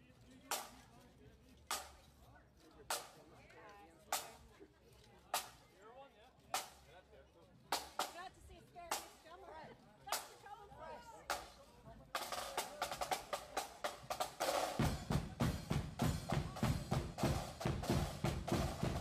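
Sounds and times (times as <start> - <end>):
voices chattering: 0.0 - 19.0
marching band playing: 7.7 - 8.2, 11.3 - 19.0
snare drum rolls: 12.2 - 19.0
bass drum: 14.0 - 19.0.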